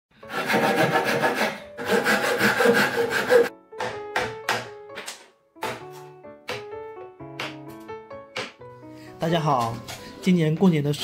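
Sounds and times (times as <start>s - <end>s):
hand saw cutting wood: 0.2s - 3.5s.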